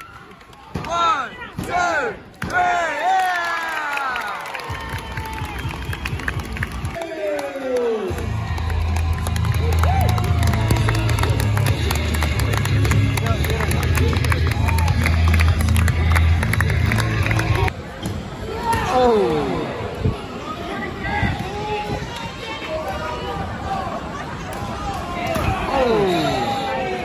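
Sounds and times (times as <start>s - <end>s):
fans clapping and cheering: 0.0s - 17.8s
crowd shouting: 18.4s - 27.0s.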